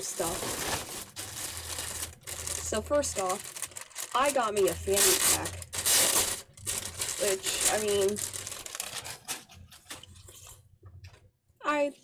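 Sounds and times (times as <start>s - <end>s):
plastic bag crinkling: 0.0s - 10.5s.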